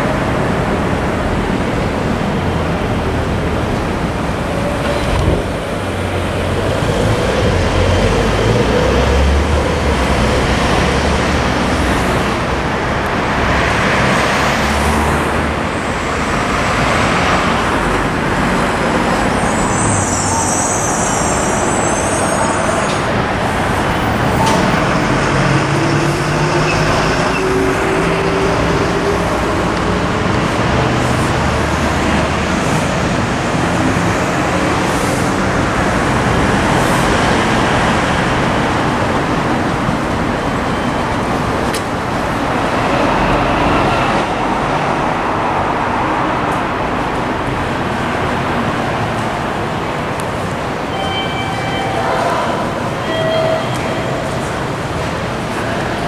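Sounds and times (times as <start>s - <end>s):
vehicles passing on street: 0.0s - 56.0s.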